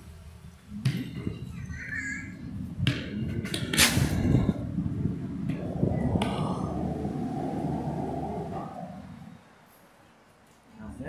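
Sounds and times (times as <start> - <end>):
low rumble of passing traffic: 0.0 - 11.0.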